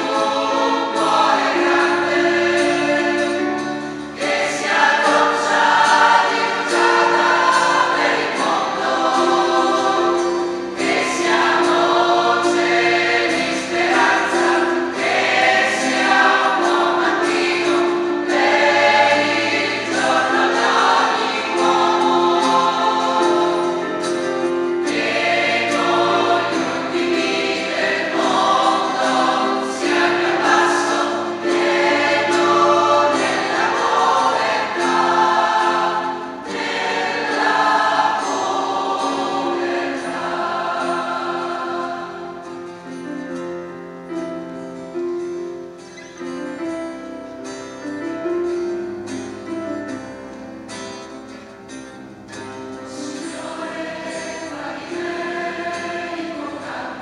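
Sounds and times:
choir singing a hymn: 0.0s - 45.6s, 46.2s - 57.0s.

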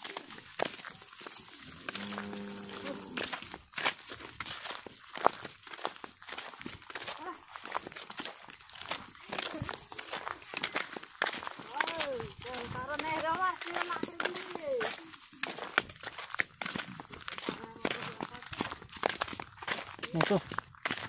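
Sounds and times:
footsteps on gravel path: 0.0s - 21.0s.

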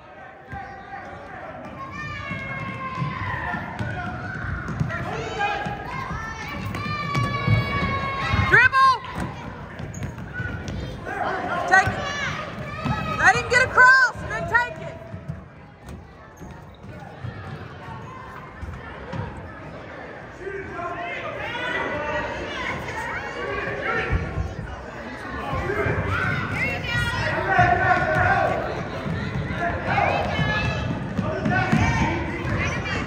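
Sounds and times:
faint chatter: 0.0s - 33.0s
spectators' voices and calls: 0.0s - 33.0s
basketball bouncing on wooden floor: 9.1s - 10.9s.

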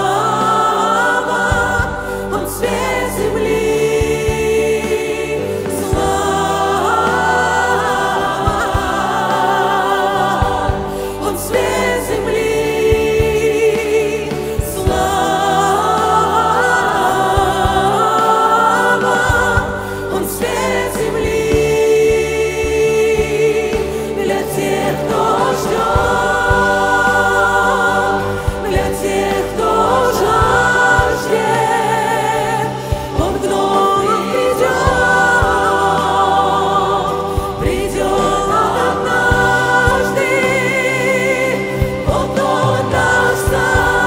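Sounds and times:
choir singing: 0.0s - 44.0s.

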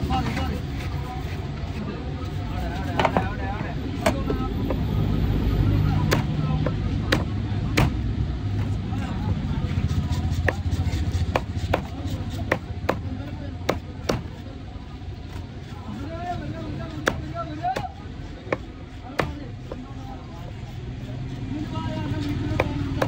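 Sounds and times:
knife chopping into wooden block: 6.0s - 8.0s, 10.3s - 13.1s, 18.5s - 19.8s.

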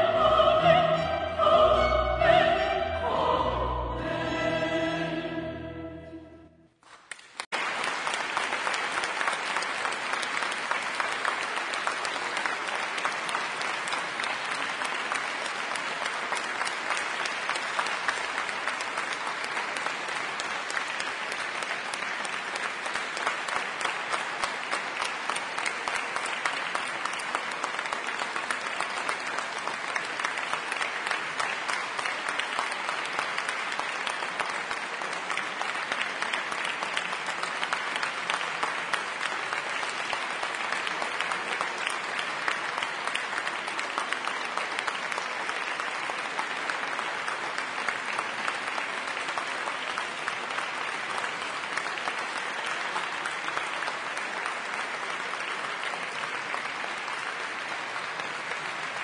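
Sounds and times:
audience applauding: 6.8s - 59.0s.

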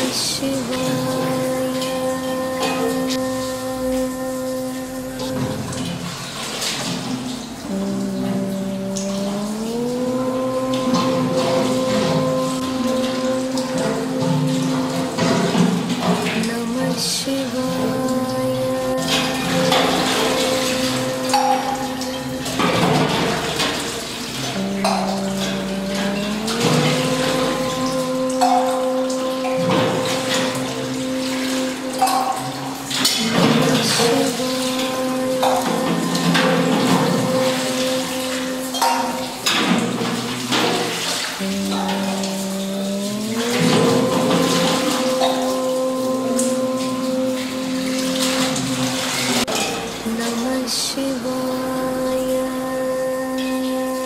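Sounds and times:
water splashing on stone: 0.0s - 54.0s.

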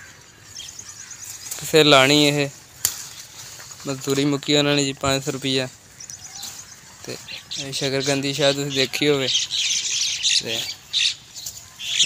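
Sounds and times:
birds calling: 0.0s - 12.0s.

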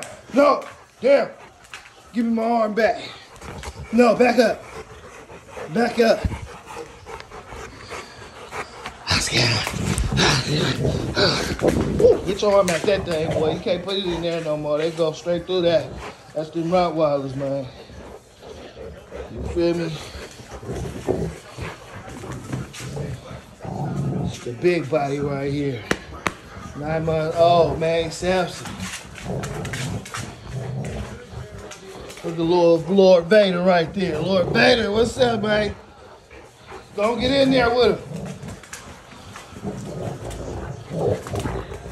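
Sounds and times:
dog panting hard: 0.0s - 41.9s.

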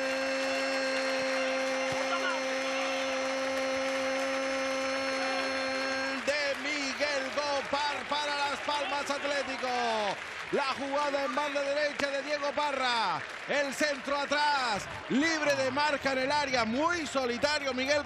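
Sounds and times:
man speaking excitedly: 4.8s - 18.0s.

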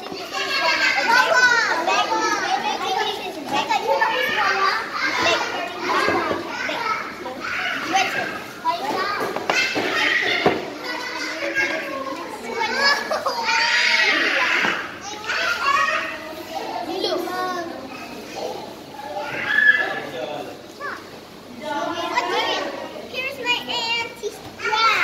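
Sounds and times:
girls chattering: 0.0s - 25.0s
young children talking: 0.0s - 25.0s.

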